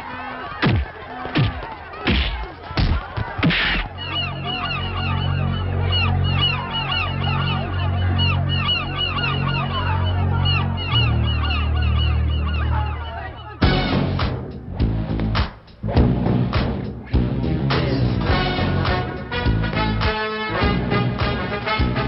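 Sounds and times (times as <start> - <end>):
chorus of bird calls: 0.0 - 13.9.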